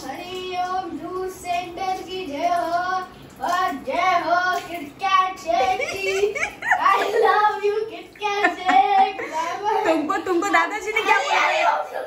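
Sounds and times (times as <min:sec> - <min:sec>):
child singing: 0:00.0 - 0:09.9.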